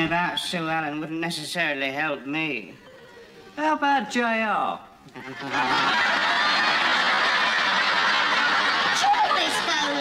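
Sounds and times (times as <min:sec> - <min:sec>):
studio audience laughing: 0:05.1 - 0:10.0.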